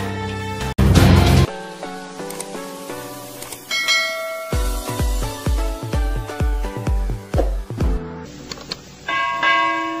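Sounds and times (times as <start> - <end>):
bell chime ringing: 3.7 - 4.9, 9.1 - 10.0.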